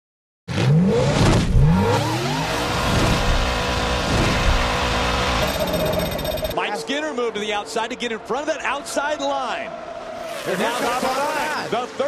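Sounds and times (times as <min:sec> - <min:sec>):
race car engine revving: 0:00.5 - 0:06.6.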